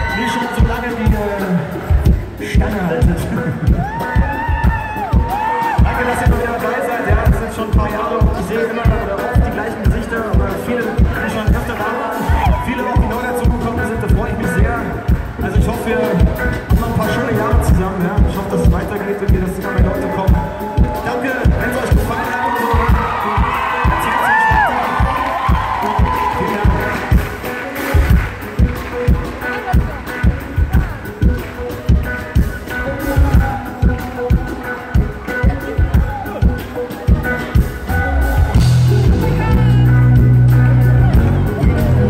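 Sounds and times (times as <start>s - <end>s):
electric guitar: 0.0s - 42.0s
live band playing: 0.0s - 42.0s
low drum beat: 0.0s - 42.0s
electric bass: 26.6s - 42.0s.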